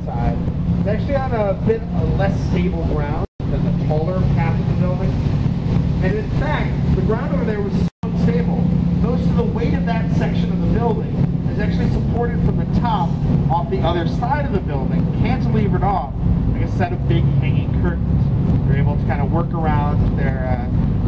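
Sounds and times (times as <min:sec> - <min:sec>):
boat engine humming: 0:00.0 - 0:21.0
wind on microphone: 0:00.0 - 0:21.0.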